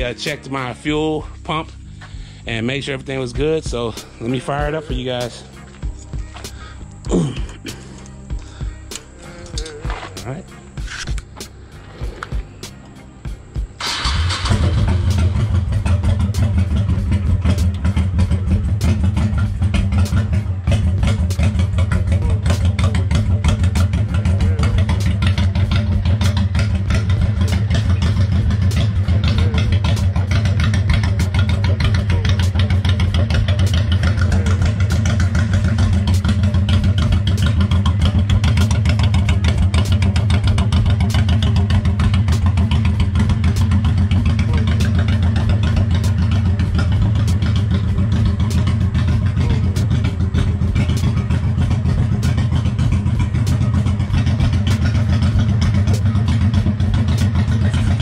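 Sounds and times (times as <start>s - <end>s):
motorcycle engine idling: 0.0s - 58.0s.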